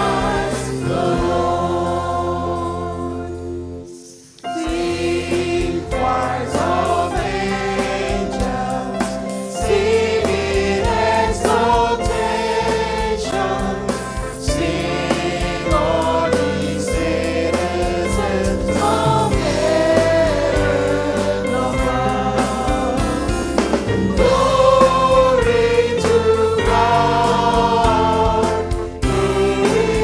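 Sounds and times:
steady drum beat: 0:00.0 - 0:03.2, 0:04.6 - 0:30.0
gospel choir singing: 0:00.0 - 0:30.0
sustained bass line: 0:09.7 - 0:30.0.

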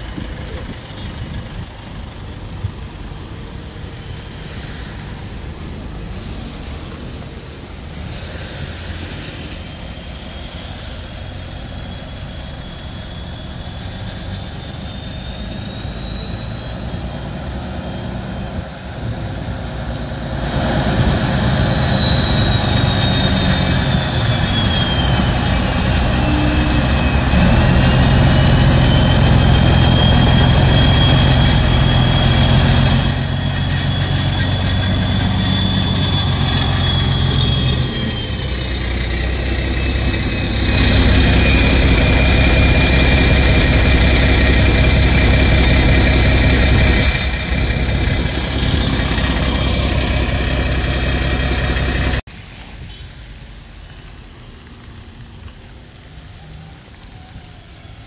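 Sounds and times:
diesel truck engine at low revs: 0:00.0 - 0:52.3
other vehicle engines: 0:00.0 - 0:58.0
thin high whine: 0:09.0 - 0:52.2.

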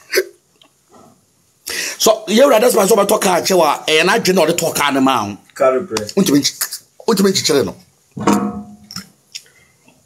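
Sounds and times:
sharp intake of breath: 0:01.7 - 0:02.0.

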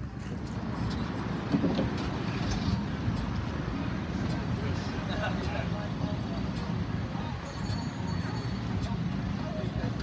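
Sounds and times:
vehicle engine rumbling: 0:00.0 - 0:10.0
people talking: 0:04.2 - 0:10.0.

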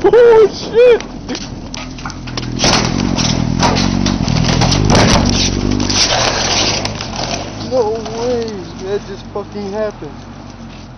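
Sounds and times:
motorcycle engine running: 0:01.1 - 0:10.9
scraping and rustling: 0:01.3 - 0:10.9.

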